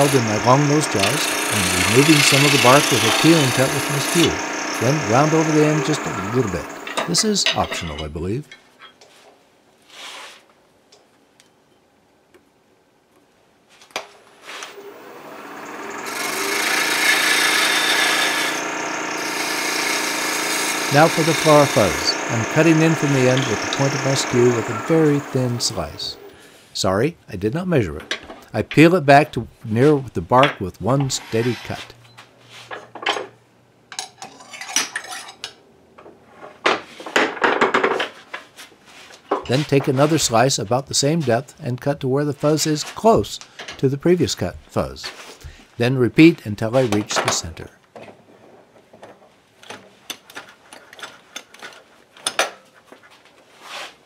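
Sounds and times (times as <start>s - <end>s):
chisel scraping wood: 0.0s - 7.0s
wood lathe hum: 0.0s - 7.3s, 14.7s - 26.4s.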